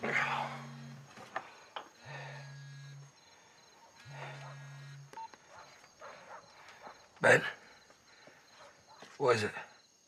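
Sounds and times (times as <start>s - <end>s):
person snoring: 0.0s - 1.0s.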